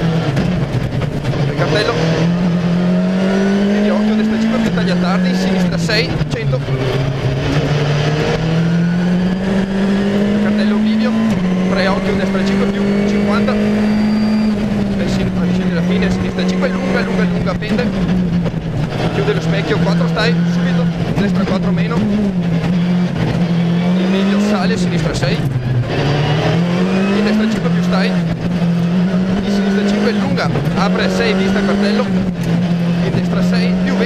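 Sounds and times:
rally car engine pulling hard: 0:00.0 - 0:34.0.

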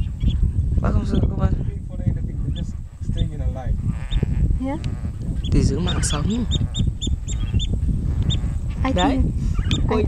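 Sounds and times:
steady low rumble: 0:00.0 - 0:10.0
waterbirds calling: 0:02.5 - 0:10.0.

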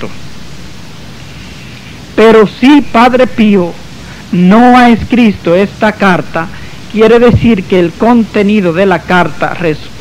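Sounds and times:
background hiss: 0:00.0 - 0:10.0
faint low hum: 0:00.0 - 0:10.0.

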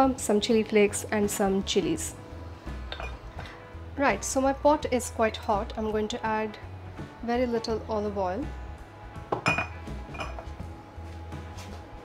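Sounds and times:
soft background music: 0:00.0 - 0:12.0
glass bottle clinking on shelf: 0:02.9 - 0:03.2, 0:09.3 - 0:10.5.

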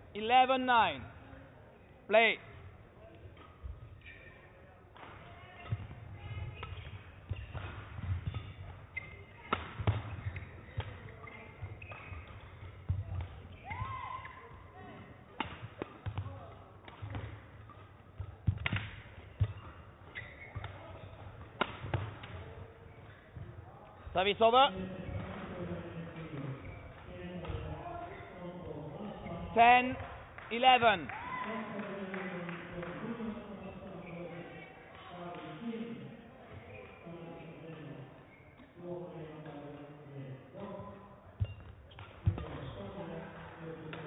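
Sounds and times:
rackets striking shuttlecock: 0:04.9 - 0:14.4, 0:15.2 - 0:23.6, 0:41.4 - 0:42.7.

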